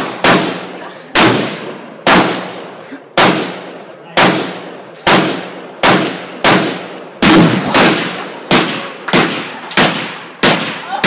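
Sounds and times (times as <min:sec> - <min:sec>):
gunshots with echo: 0:00.0 - 0:11.0.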